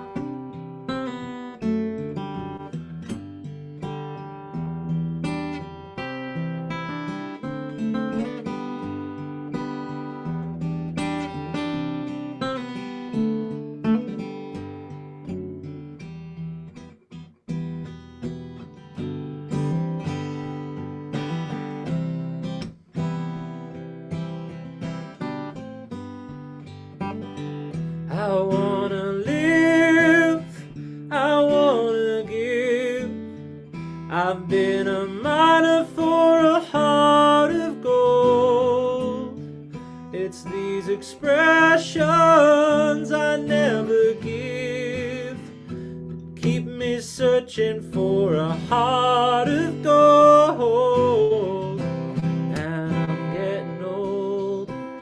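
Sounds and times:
man singing: 0.0s - 0.6s, 28.1s - 45.8s, 46.4s - 55.0s
acoustic guitar chords: 0.0s - 55.0s.

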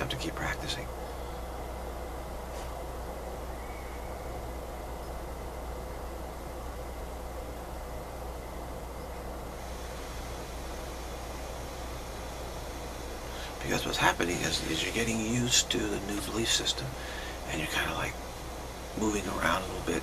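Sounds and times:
constant low hum and hiss: 0.0s - 20.0s.

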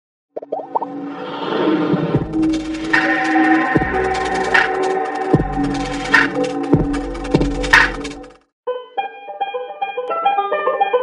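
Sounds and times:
short rising tones: 0.5s - 6.8s
sustained musical sound: 2.2s - 8.4s.

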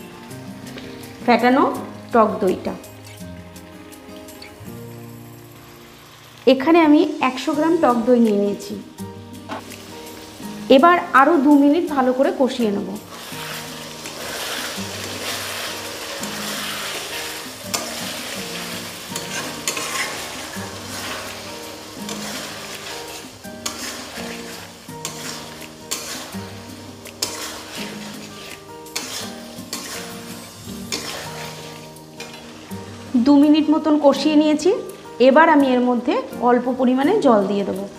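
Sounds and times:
slow background music: 0.0s - 37.9s
vegetables sizzling in hot oil: 0.0s - 37.9s
metal spatula scraping a pan: 13.0s - 33.3s.

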